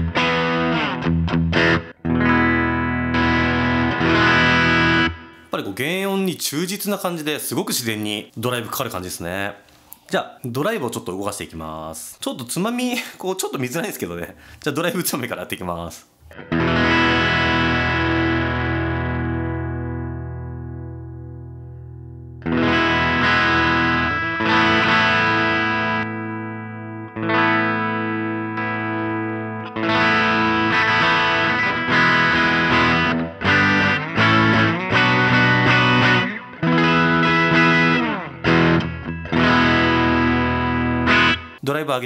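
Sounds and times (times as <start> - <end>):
electric guitar strummed chords: 0.0 - 5.5, 16.3 - 41.6.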